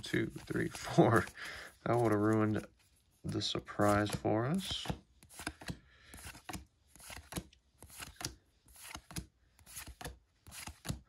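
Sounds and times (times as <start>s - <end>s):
cards flipped by hand: 0.0s - 11.0s.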